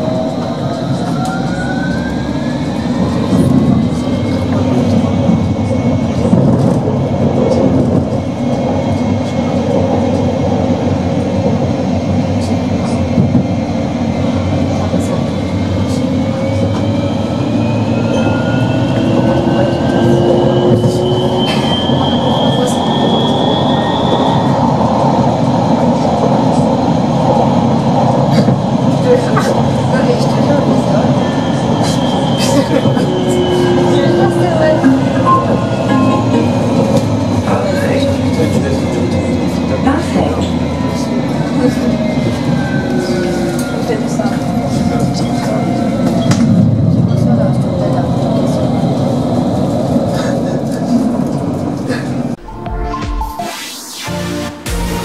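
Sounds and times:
tram wheels rumbling on track: 0:00.0 - 0:52.4.

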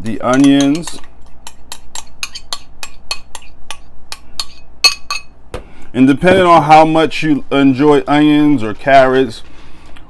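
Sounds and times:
spoon scraping glass bowl: 0:00.3 - 0:02.7.

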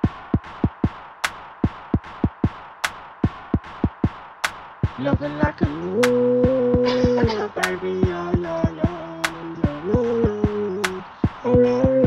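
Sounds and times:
sharp snare or clap hit: 0:00.0 - 0:07.0, 0:07.6 - 0:08.2
drum machine kick drums: 0:00.0 - 0:12.0.

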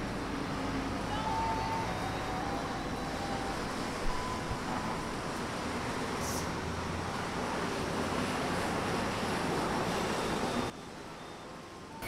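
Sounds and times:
traffic: 0:00.0 - 0:12.0.

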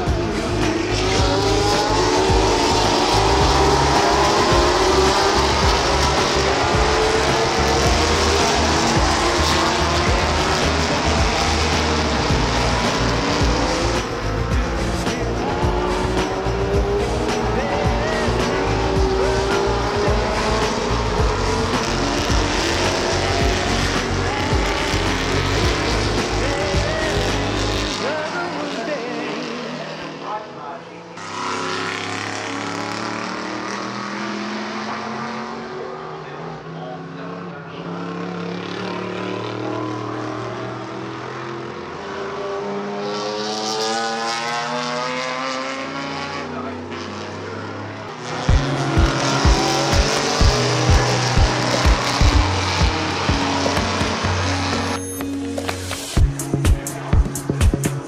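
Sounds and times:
heavy low music beat: 0:00.0 - 0:27.9, 0:48.5 - 0:54.8, 0:55.6 - 0:58.0
race car engines revving past: 0:00.0 - 0:58.0.

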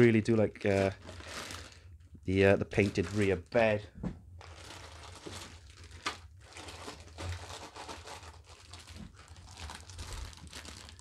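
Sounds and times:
plastic bags crinkling: 0:00.0 - 0:03.8, 0:04.4 - 0:11.0
sharp plastic crackle: 0:00.0 - 0:03.8, 0:04.4 - 0:11.0.

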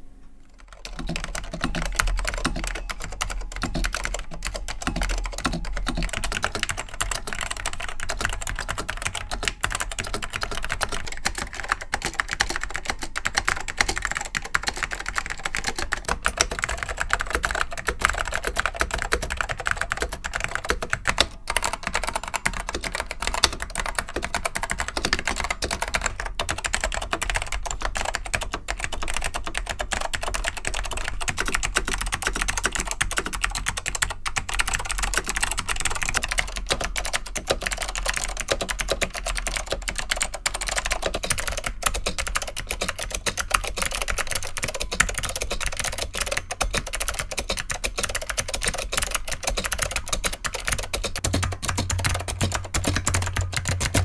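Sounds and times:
rapid typing on keyboards: 0:00.5 - 0:54.0.

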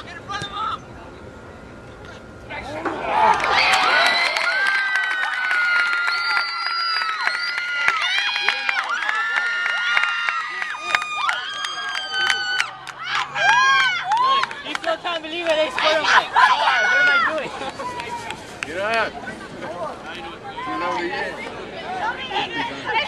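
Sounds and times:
crowd cheering and shouting: 0:02.6 - 0:18.4.

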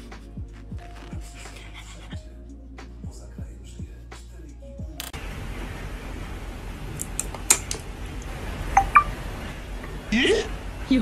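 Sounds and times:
short high tones: 0:08.8 - 0:09.1.

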